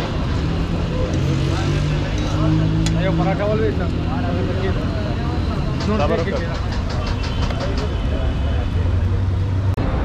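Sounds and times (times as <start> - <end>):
people talking: 0.5 - 9.5.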